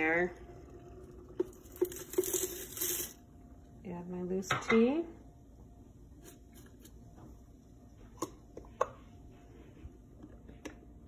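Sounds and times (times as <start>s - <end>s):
dry tea leaves pouring into metal: 1.6s - 3.2s.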